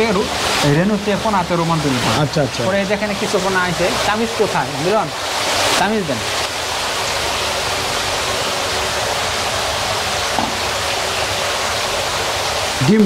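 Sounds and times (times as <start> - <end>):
water rushing from pipes into trays: 0.0 - 13.0.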